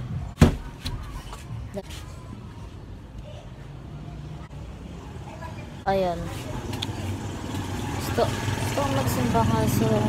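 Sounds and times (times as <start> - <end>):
vehicle engine rumbling: 4.0 - 10.0.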